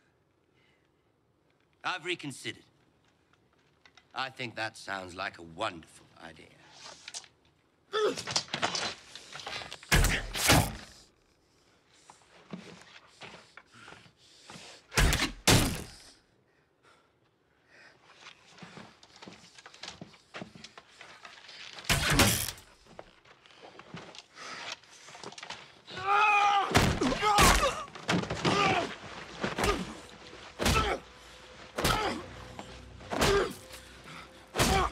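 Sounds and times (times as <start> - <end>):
arrows thudding into wood: 9.9 - 10.9, 21.9 - 22.7, 34.5 - 34.9
man shouting: 34.6 - 34.9.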